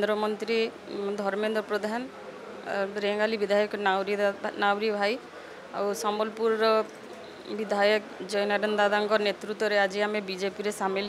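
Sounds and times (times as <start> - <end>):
woman speaking: 0.0 - 2.1, 2.7 - 5.2, 5.8 - 6.9, 7.5 - 11.0.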